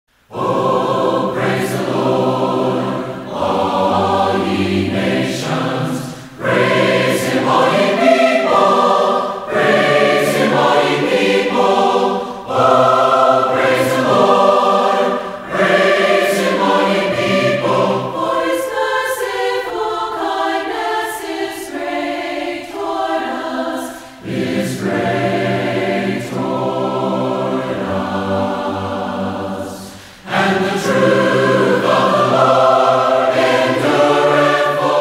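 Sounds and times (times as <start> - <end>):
choir singing: 0.2 - 35.0.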